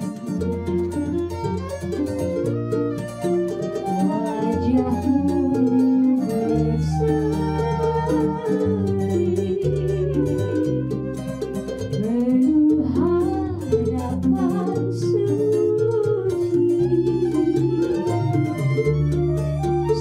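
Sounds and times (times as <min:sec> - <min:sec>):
flute: 0:00.0 - 0:20.0
guitar strumming: 0:00.0 - 0:20.0
plucked bass line: 0:00.0 - 0:20.0
small lutes strumming: 0:00.0 - 0:20.0
violin: 0:00.0 - 0:20.0
woman singing: 0:03.8 - 0:20.0.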